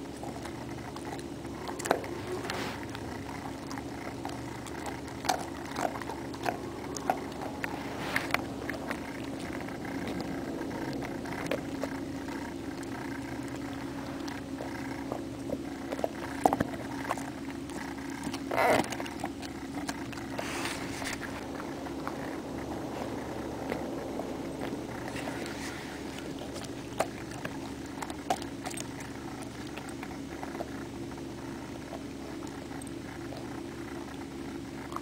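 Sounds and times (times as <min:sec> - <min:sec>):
dog snuffling and licking: 0:00.0 - 0:35.0
steady low hum: 0:00.0 - 0:35.0.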